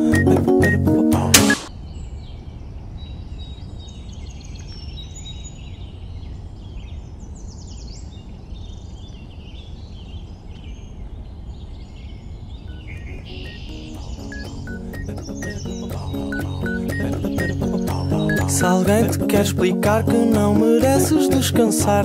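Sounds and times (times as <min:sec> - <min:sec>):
small birds chirping: 0:01.6 - 0:22.0.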